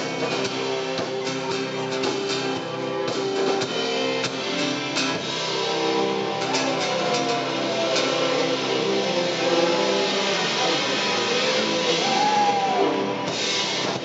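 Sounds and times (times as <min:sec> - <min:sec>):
bending electric guitar notes: 0:00.0 - 0:14.0
live rock band playing: 0:00.0 - 0:14.0.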